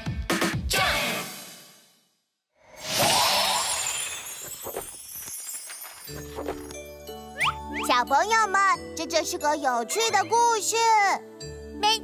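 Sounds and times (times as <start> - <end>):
cartoon background music: 6.2 - 12.0.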